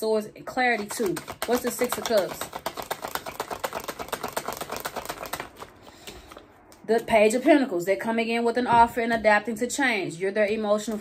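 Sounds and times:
cards being shuffled: 0:00.7 - 0:06.8.

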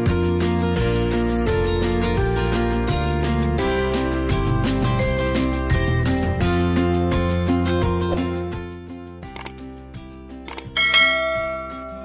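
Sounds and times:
soft background music: 0:00.0 - 0:12.0
mouse double click: 0:09.4 - 0:09.6, 0:10.5 - 0:10.8
bright bell chime: 0:10.8 - 0:12.0.

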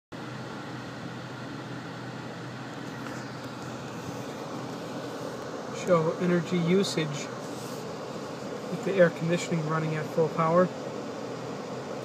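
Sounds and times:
air conditioning air rushing: 0:00.1 - 0:12.0.

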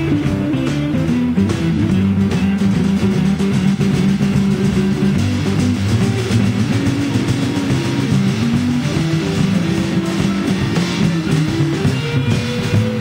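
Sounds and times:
bass: 0:00.0 - 0:13.0
drums: 0:00.0 - 0:13.0
electric guitar: 0:00.0 - 0:13.0.

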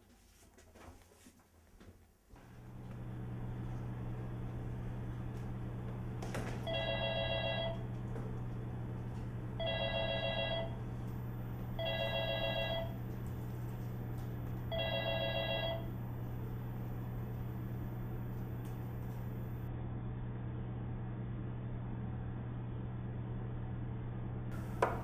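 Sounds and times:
steady low hum: 0:01.4 - 0:25.0
electronic telephone ringing: 0:06.6 - 0:07.9, 0:09.6 - 0:10.8, 0:11.8 - 0:13.1, 0:14.7 - 0:16.0.

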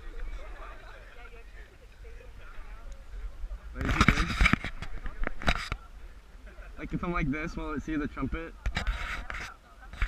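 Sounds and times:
faint voices: 0:00.0 - 0:10.0
rubbing and rustling on microphone: 0:02.3 - 0:06.2, 0:07.0 - 0:10.0.

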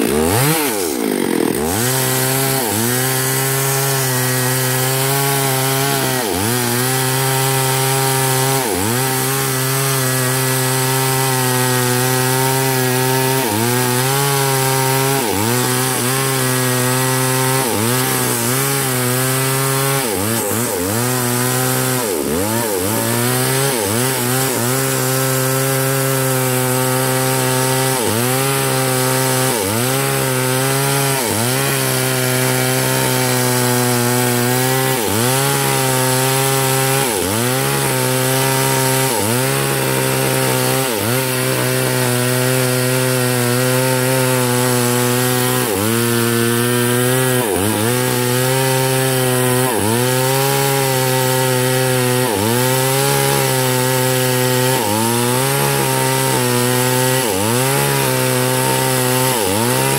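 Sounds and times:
chainsaw cutting through log: 0:00.0 - 0:59.9.

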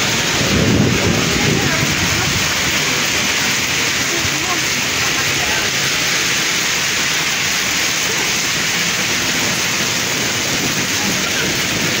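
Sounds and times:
heavy rain on wet pavement: 0:00.0 - 0:12.0.

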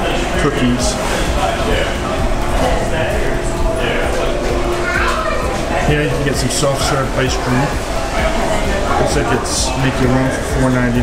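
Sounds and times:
children's voices: 0:00.0 - 0:10.1
background chatter: 0:00.0 - 0:11.0.

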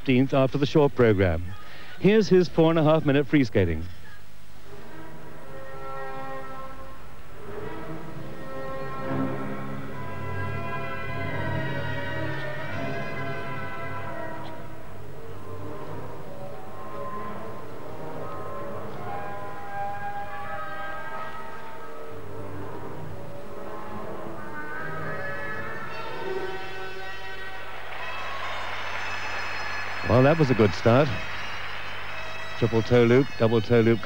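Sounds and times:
instrumental music over loudspeakers: 0:04.6 - 0:34.0.

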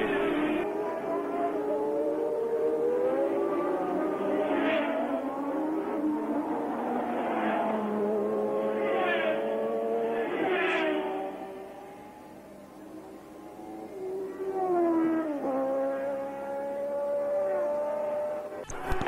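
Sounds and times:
race car engines passing: 0:00.0 - 0:19.0.

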